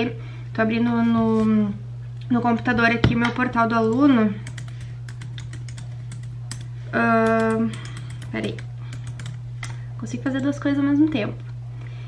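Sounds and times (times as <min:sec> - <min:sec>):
steady low hum: 0:00.0 - 0:12.0
laptop keyboard typing: 0:03.8 - 0:10.6.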